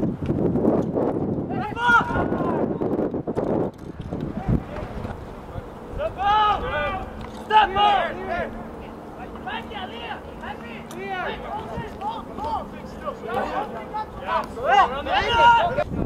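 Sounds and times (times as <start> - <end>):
low rush of noise: 0.0 - 16.0
men shouting: 1.5 - 2.9, 5.6 - 15.9.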